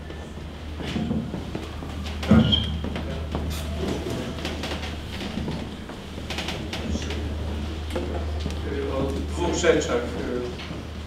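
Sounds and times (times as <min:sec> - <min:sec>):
sound system hum: 0:00.0 - 0:11.0.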